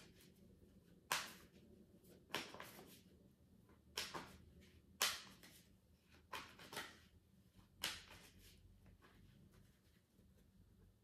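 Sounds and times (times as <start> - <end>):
cards being shuffled: 0.0 - 3.1, 3.7 - 10.5.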